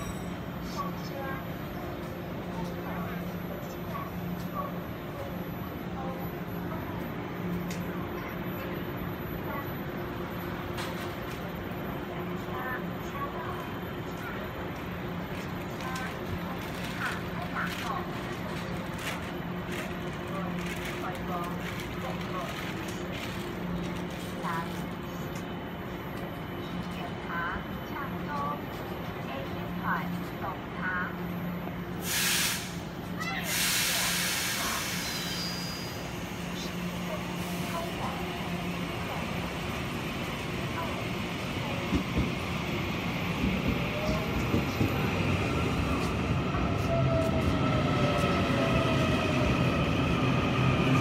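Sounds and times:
electric train humming: 0.0 - 51.0
train pulling in: 0.0 - 51.0
compressed air hiss: 32.0 - 32.8.

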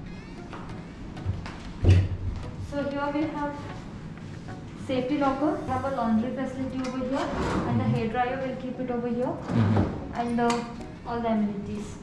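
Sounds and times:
faint music: 0.0 - 12.0.

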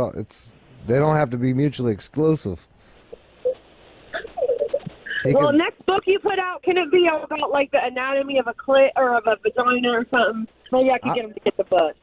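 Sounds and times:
person humming: 4.4 - 5.6.

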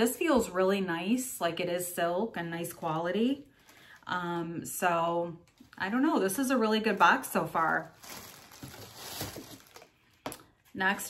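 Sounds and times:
clothing and wrapping rustling: 5.5 - 10.8.

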